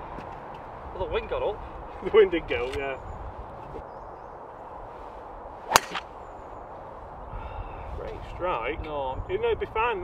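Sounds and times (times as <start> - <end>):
golf club striking ball: 5.7 - 6.1.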